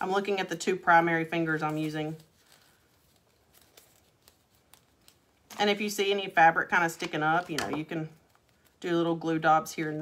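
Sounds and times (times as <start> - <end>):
faint fabric clicks and rustles: 1.5 - 5.8.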